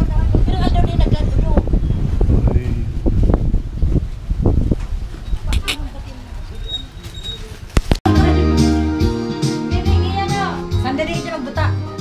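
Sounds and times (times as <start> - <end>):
microphone handling rumble: 0.0 - 8.0
rustle: 2.6 - 8.0.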